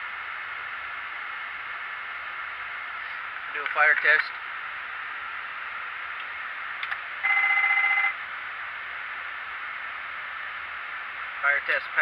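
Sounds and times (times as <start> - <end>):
fire warning bell ringing: 7.2 - 8.2.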